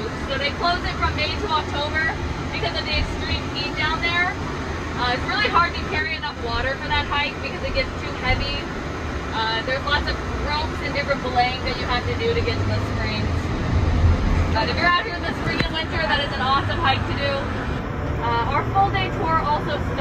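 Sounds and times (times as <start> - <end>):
van engine and tyres rumbling: 0.0 - 20.0.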